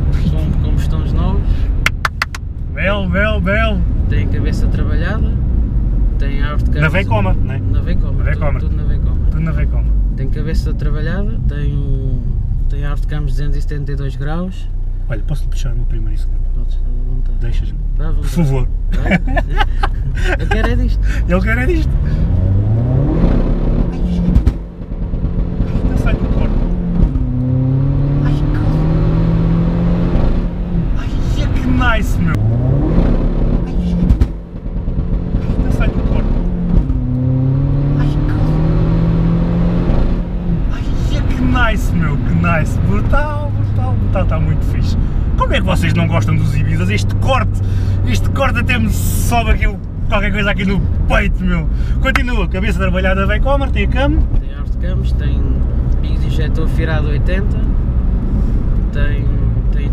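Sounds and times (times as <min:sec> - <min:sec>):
car engine accelerating: 0:00.0 - 0:59.9.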